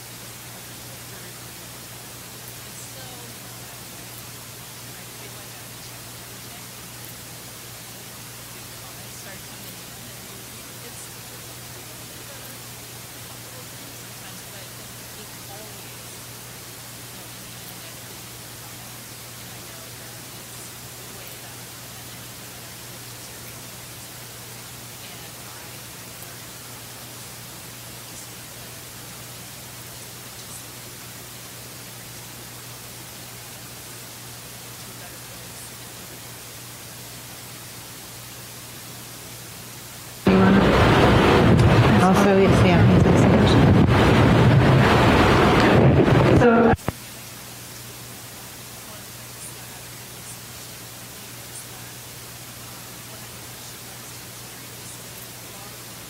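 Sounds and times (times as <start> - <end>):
electrical hiss: 0.0 - 56.0
faint low hum: 0.0 - 56.0
loud rushing noise: 40.3 - 46.8.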